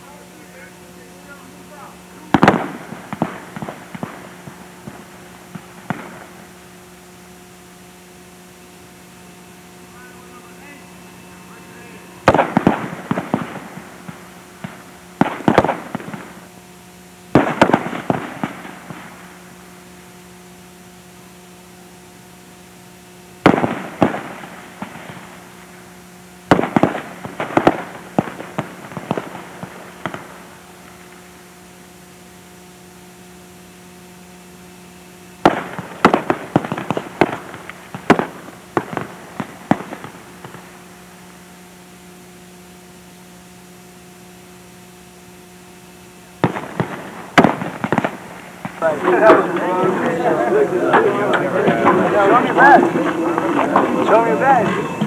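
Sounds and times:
steady electrical hum: 0.0s - 55.0s
rifle shots: 1.3s - 6.8s, 9.2s - 16.5s, 17.3s - 19.3s, 23.4s - 25.4s, 26.5s - 31.2s, 35.4s - 40.8s, 46.4s - 49.6s.

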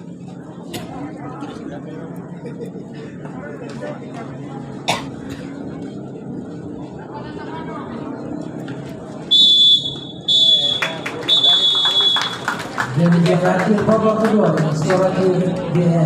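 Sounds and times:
murmur of crowd voices: 0.0s - 16.0s
referee's whistle blasts: 9.3s - 12.4s.

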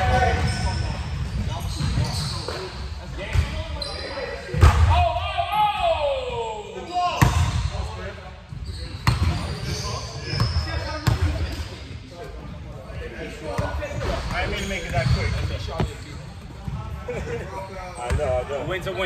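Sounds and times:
players' voices: 0.0s - 19.0s.

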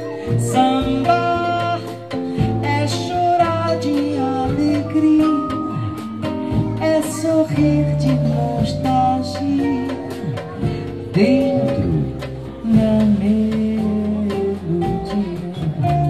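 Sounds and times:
light percussion: 0.0s - 16.0s
live bossa nova band: 0.0s - 16.0s
steady bass line: 0.0s - 16.0s
vibraphone ringing notes: 4.0s - 13.4s.

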